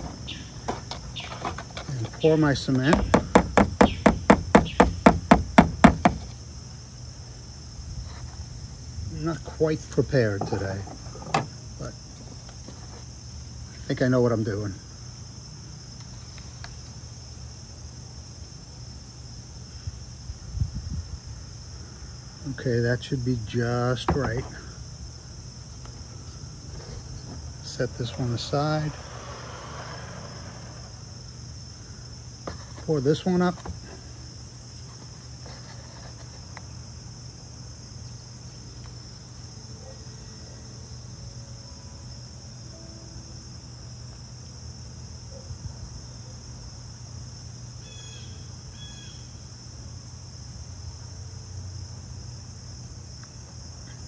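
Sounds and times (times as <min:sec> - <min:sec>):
insects buzzing: 0:00.0 - 0:54.0.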